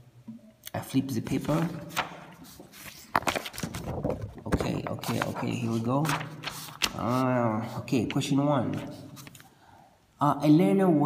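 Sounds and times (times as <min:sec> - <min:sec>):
paper pages rustling: 0:01.3 - 0:07.4, 0:08.6 - 0:09.5.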